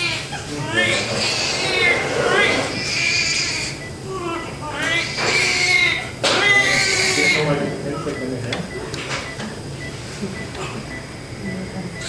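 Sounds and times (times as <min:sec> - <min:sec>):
newborn baby crying: 0:00.0 - 0:07.6.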